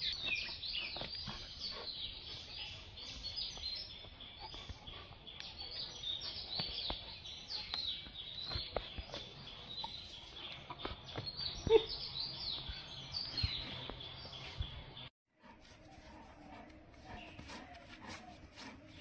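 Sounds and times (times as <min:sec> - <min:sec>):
small birds chirping: 0:00.0 - 0:15.1, 0:16.1 - 0:19.0.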